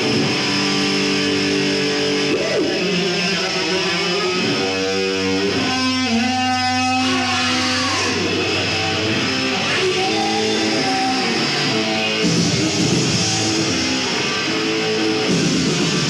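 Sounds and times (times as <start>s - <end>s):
distorted electric guitar: 0.0s - 16.0s
heavy metal band playing: 0.0s - 16.0s.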